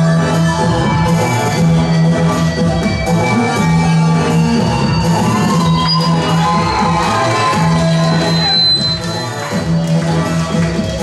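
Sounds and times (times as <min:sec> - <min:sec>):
high whistle-like tone: 0:04.4 - 0:06.7, 0:08.0 - 0:09.4.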